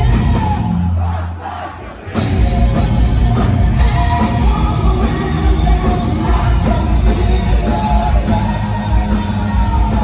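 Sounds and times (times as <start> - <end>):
crowd shouting along: 0.0 - 4.8
heavy metal band playing live: 0.0 - 10.0.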